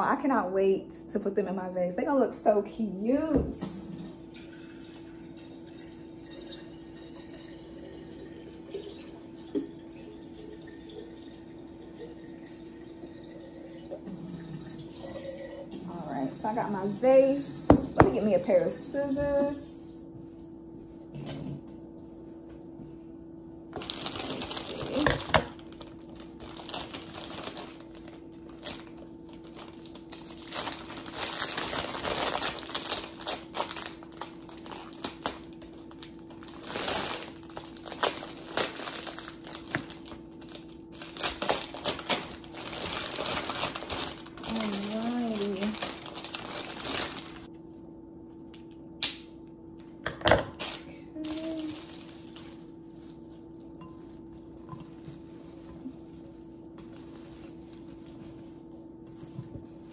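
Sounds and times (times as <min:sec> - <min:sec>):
plastic wrapping rustling: 0:23.7 - 0:47.6, 0:50.5 - 0:59.9.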